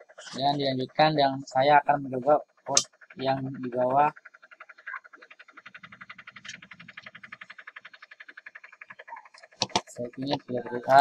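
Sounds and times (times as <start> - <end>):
rapid pulsing call: 0.0 - 11.0.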